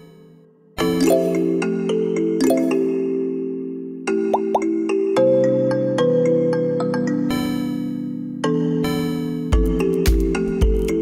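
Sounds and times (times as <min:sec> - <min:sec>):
electronic game music: 0:00.0 - 0:01.8, 0:02.4 - 0:03.1, 0:04.3 - 0:04.7
rising blip sound effects: 0:04.4 - 0:04.7.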